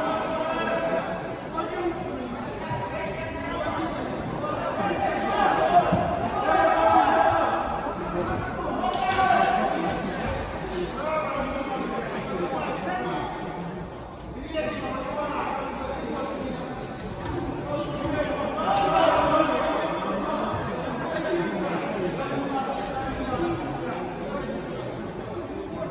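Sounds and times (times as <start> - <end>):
echoing voices calling and chattering: 0.0 - 25.9.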